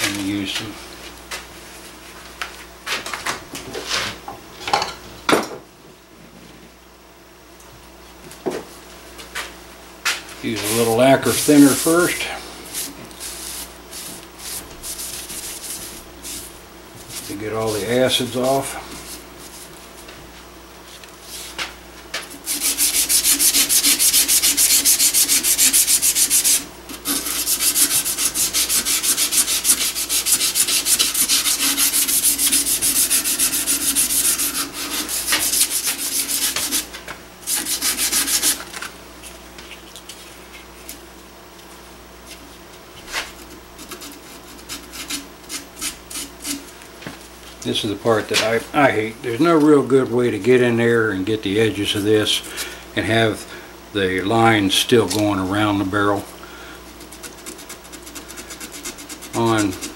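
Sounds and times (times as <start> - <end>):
abrasive strip sanding metal barrel: 10.4 - 16.5, 22.3 - 38.8, 43.5 - 46.7, 54.7 - 59.9.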